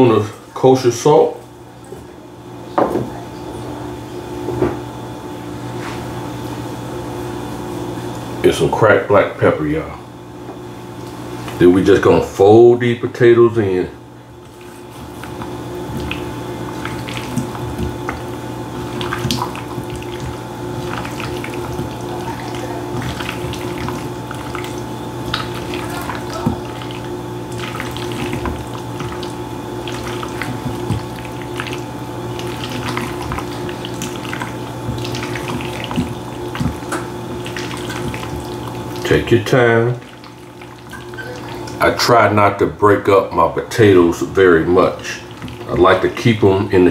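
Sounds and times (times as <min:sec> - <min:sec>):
steady low hum: 0:00.0 - 0:46.9.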